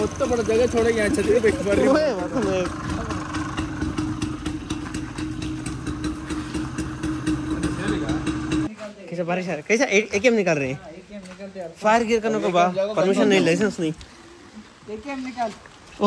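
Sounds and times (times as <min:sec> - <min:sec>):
vehicle engine idling: 0:00.0 - 0:08.7.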